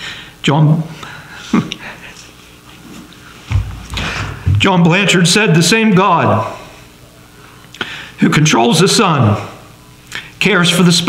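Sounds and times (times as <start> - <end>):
shaky breathing: 1.0 - 4.5.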